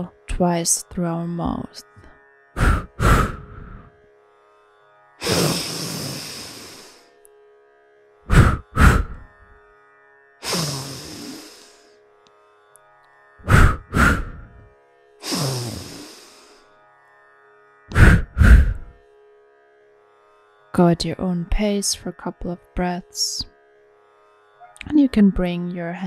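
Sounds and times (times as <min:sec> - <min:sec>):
strong nasal inhale: 0:02.6 - 0:03.9, 0:05.2 - 0:07.1, 0:08.3 - 0:09.4, 0:10.4 - 0:12.0, 0:13.4 - 0:16.7, 0:17.9 - 0:18.9
sharp exhales through mouth: 0:05.2 - 0:07.0, 0:10.4 - 0:11.8, 0:13.5 - 0:14.5, 0:15.2 - 0:16.6, 0:17.9 - 0:18.9
soft background music: 0:24.6 - 0:26.0.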